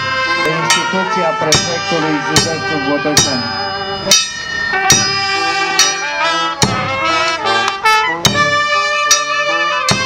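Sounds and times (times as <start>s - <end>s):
brass band sustained notes: 0.0s - 10.0s
bass drum strikes: 0.6s - 7.1s, 8.2s - 8.7s.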